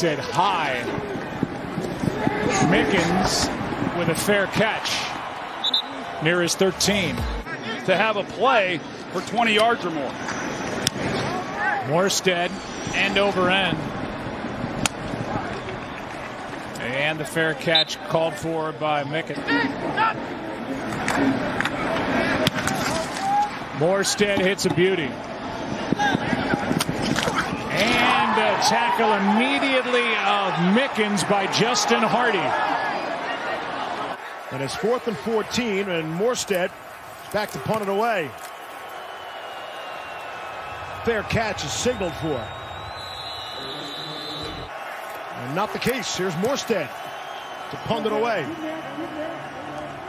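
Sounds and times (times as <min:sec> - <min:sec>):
football field ambience: 0:00.0 - 0:50.0
players' voices: 0:00.0 - 0:50.0
stadium crowd noise: 0:00.0 - 0:50.0.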